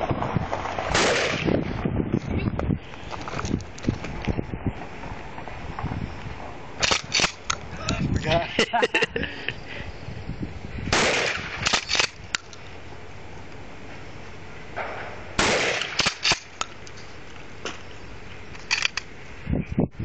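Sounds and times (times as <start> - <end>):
shotgun blasts: 0.8 - 1.6, 10.9 - 12.2, 14.8 - 16.6
shotgun pump racking clacks: 11.6 - 12.6, 18.6 - 19.1.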